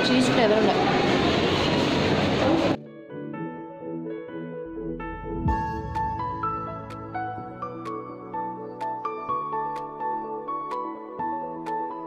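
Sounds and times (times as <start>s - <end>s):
soft background music: 2.6s - 12.0s.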